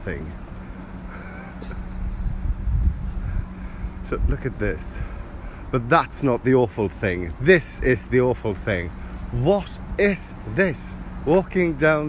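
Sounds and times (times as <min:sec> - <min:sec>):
low rumble: 0:00.0 - 0:05.7
construction machinery engine hum: 0:00.0 - 0:12.0.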